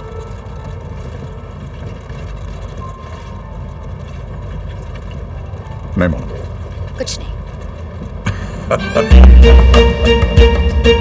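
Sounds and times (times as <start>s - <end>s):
car engine rumble: 0.0s - 11.0s
road noise inside vehicle: 0.0s - 11.0s.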